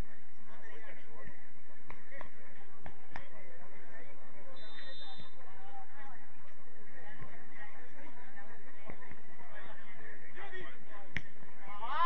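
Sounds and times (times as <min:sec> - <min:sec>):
low background noise: 0:00.0 - 0:12.0
distant shouts of football players: 0:11.6 - 0:12.0.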